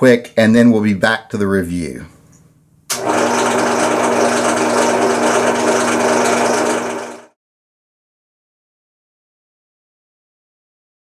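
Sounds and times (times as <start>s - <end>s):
electric drill running: 2.9s - 7.4s.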